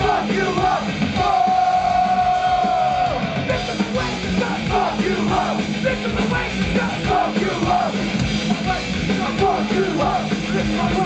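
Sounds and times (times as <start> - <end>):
distorted guitars: 0.0 - 11.0
metal band playing: 0.0 - 11.0
pounding drums: 0.0 - 11.0.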